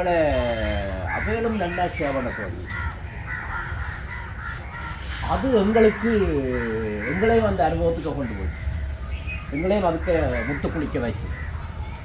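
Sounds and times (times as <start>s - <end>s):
crows cawing: 0.0s - 11.9s.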